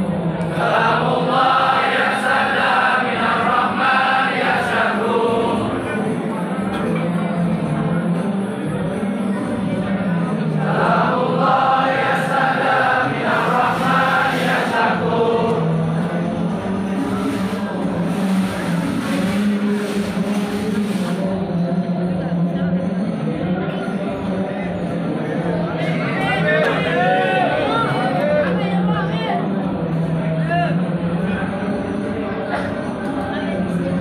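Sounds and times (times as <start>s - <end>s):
men chanting in unison: 0.5s - 6.7s, 10.5s - 21.2s.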